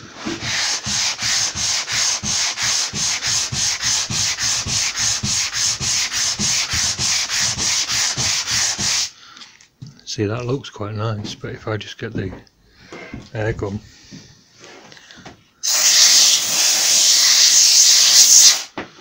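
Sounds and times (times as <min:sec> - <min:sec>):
hand sanding rasping strokes: 0:00.0 - 0:09.1.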